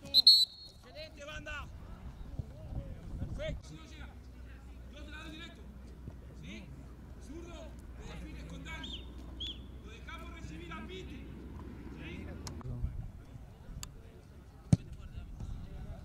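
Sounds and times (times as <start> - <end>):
men talking and calling: 0.0 - 16.0.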